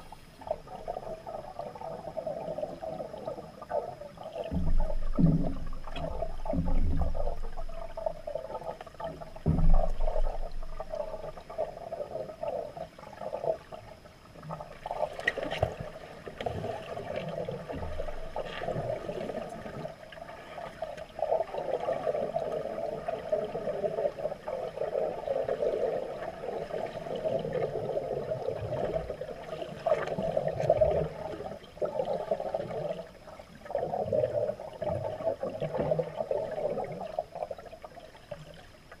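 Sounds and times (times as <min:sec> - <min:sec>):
muffled underwater water gurgling: 0:00.0 - 0:39.0.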